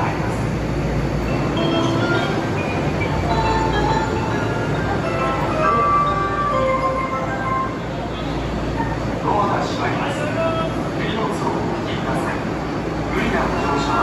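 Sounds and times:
subway train humming: 0:00.0 - 0:14.0.

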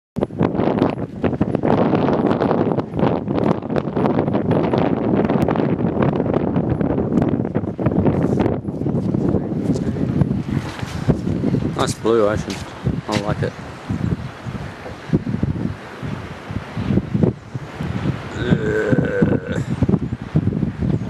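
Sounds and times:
wind buffeting microphone: 0:00.2 - 0:21.0.

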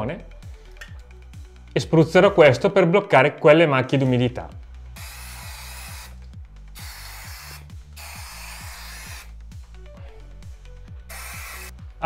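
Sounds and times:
background music with beat: 0:00.0 - 0:02.8, 0:03.9 - 0:12.0
aerosol spray can hissing: 0:04.9 - 0:09.4, 0:11.0 - 0:11.8.

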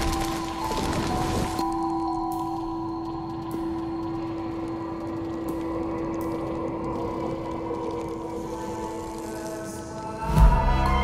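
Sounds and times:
low ambient drone: 0:00.0 - 0:11.0.

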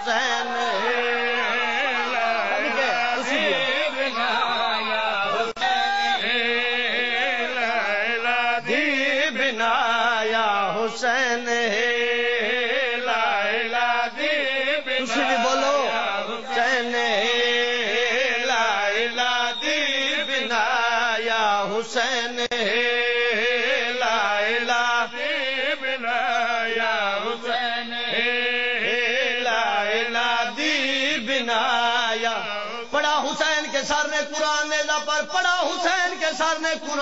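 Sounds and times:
man chanting with vibrato: 0:00.0 - 0:37.0.

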